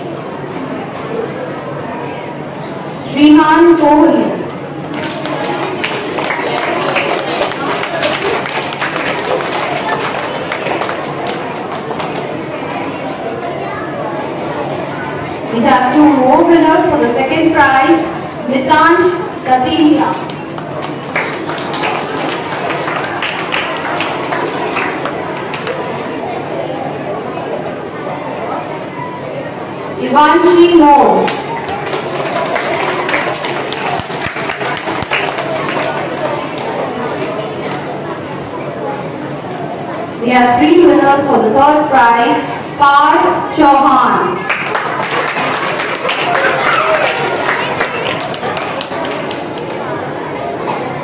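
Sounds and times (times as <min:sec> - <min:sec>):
murmur of children's voices: 0:00.0 - 0:51.0
audience clapping: 0:04.8 - 0:12.4, 0:20.1 - 0:26.0, 0:31.3 - 0:37.9, 0:44.4 - 0:50.0.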